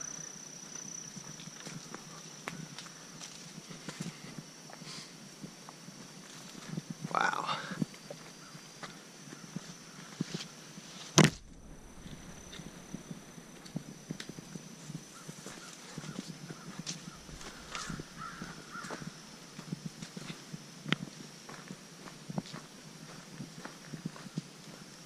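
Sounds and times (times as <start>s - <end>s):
footsteps on dirt trail: 1.6s - 4.8s, 7.8s - 25.0s
loud sharp thump: 11.2s - 14.3s.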